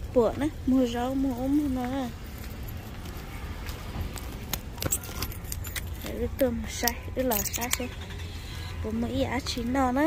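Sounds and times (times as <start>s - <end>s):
light clicks and clinks: 4.8s - 7.9s.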